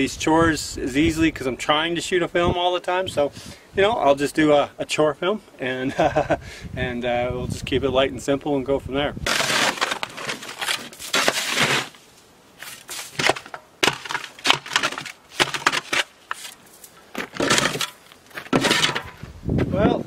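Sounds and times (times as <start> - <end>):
shovel scraping ice off wood: 9.3 - 19.2.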